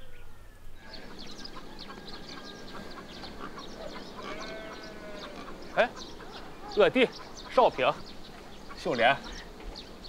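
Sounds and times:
birds calling: 0:00.0 - 0:10.0.

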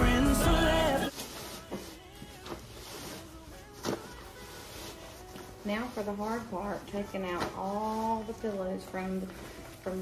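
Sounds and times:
fabric rustling: 0:00.7 - 0:10.0.

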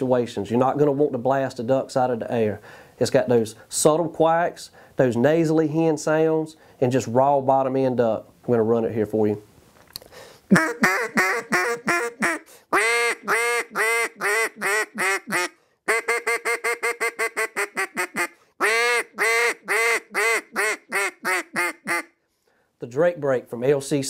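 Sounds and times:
duck call quacks: 0:10.5 - 0:22.1.

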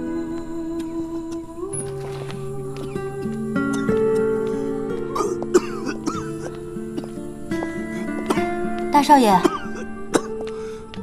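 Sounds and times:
soft background music: 0:00.0 - 0:11.0
man coughing and retching: 0:05.2 - 0:07.1, 0:09.4 - 0:10.4.

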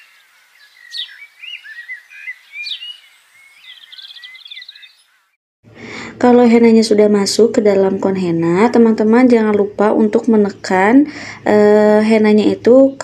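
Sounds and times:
small birds chirping: 0:00.0 - 0:05.4.

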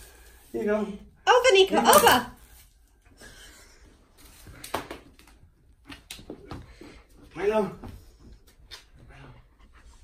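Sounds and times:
plastic film rustling: 0:01.6 - 0:03.0.

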